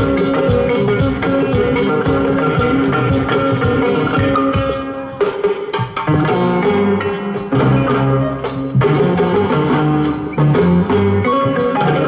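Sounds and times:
drums and percussion: 0.0 - 12.0
live band playing dance music: 0.0 - 12.0.

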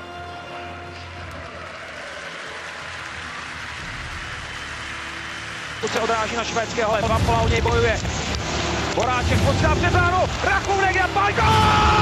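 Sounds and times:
stadium crowd cheering and applauding: 0.0 - 12.0.

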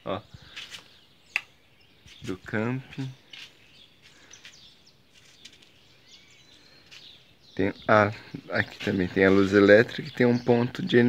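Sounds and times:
faint bird chirps: 0.0 - 11.0
person speaking: 2.2 - 3.3, 7.6 - 11.0.

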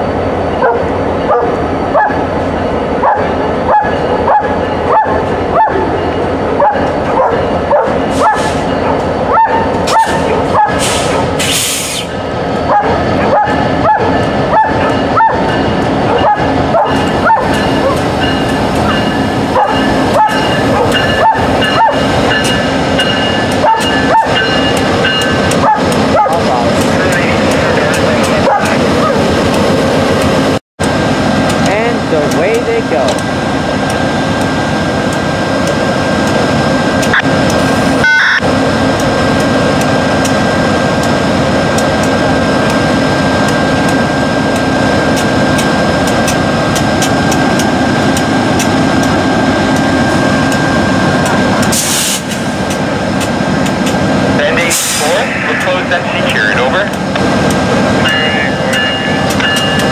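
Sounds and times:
diesel locomotive engines rumbling: 0.0 - 59.9
passenger train rolling up: 0.0 - 59.9.

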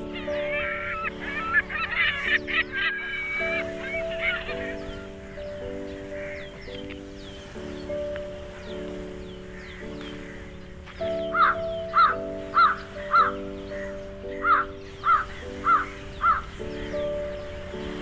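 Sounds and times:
crow cawing: 0.0 - 7.1, 9.4 - 16.9
background music with chords: 0.0 - 18.0.

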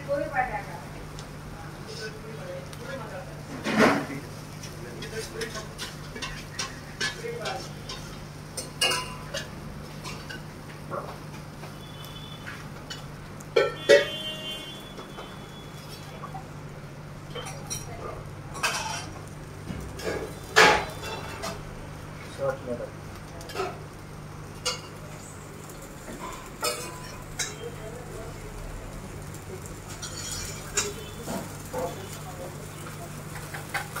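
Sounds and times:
utensils clanking on pots: 2.9 - 22.0, 23.2 - 34.0.

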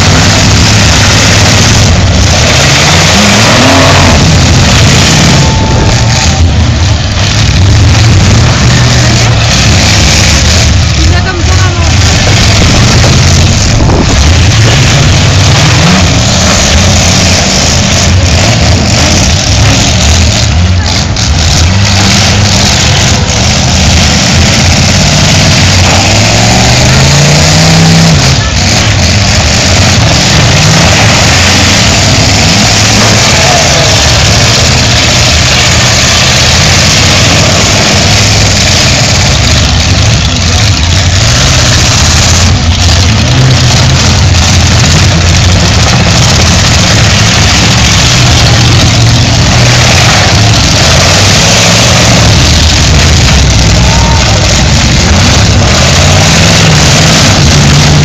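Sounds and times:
car engines revving: 0.0 - 58.0
loud outdoor noise: 0.0 - 58.0.

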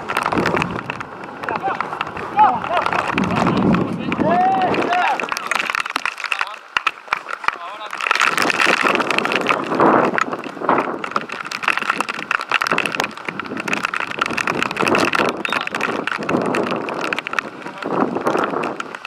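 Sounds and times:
wind rumbling on microphone: 0.0 - 19.0.

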